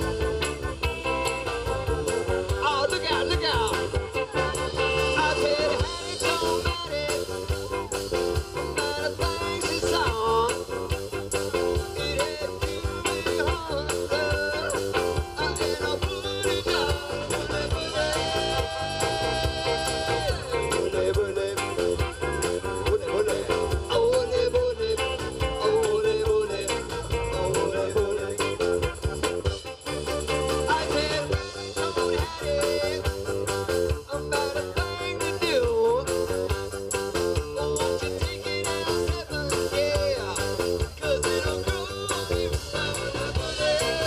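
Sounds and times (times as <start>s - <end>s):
live rock band playing: 0.0s - 44.0s
man singing lead: 0.0s - 44.0s.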